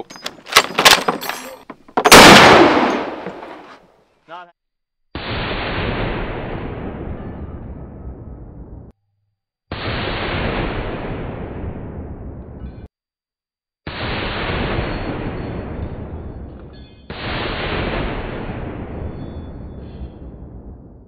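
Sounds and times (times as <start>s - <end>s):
machine gun shots with rolling echo: 2.1s - 3.7s.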